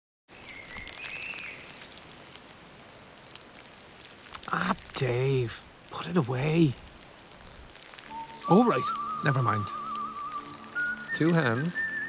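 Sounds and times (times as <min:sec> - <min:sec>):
patter of drips: 0:00.3 - 0:12.0
two-step whistled tone: 0:08.1 - 0:12.0.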